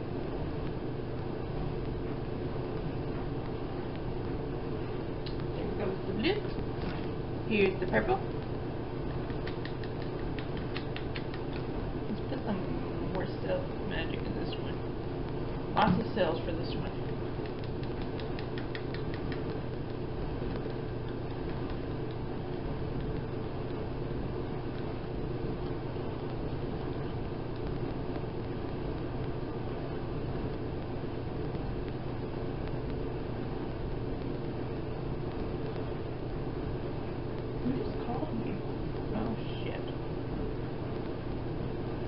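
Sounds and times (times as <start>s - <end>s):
machine hum: 0.0s - 42.0s
faint ticks: 9.1s - 11.7s, 17.4s - 22.2s.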